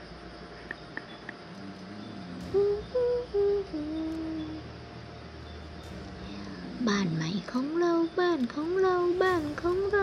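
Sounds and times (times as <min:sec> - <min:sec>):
person humming a tune: 0:01.6 - 0:04.8.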